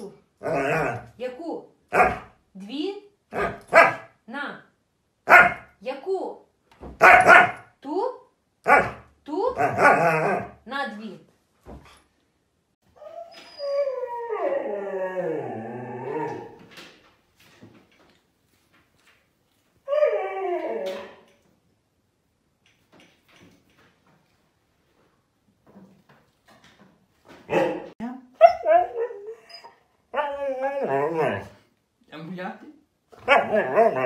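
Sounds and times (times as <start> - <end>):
dog howling calls: 30.1 - 31.5.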